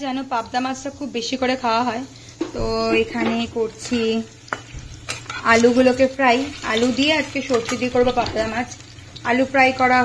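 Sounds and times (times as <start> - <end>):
woman talking: 0.0 - 4.3, 5.4 - 10.0
potatoes sizzling in oil: 0.0 - 10.0.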